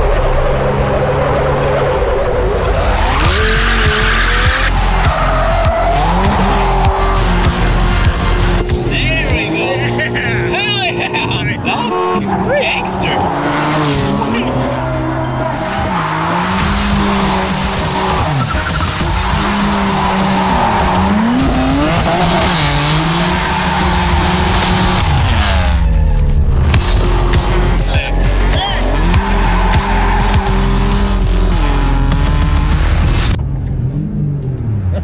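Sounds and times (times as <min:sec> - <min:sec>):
tyres squealing and skidding: 0:00.0 - 0:32.1
car engine revving: 0:00.0 - 0:35.0.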